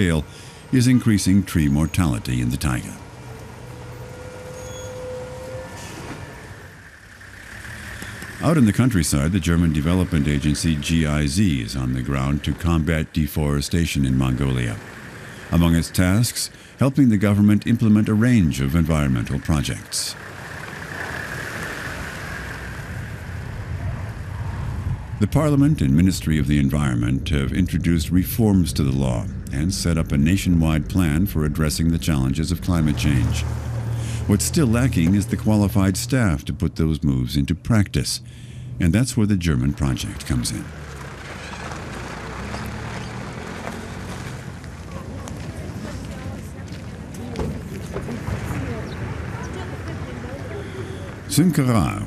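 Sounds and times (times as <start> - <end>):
off-road vehicle engine and tyres: 0.0 - 52.0.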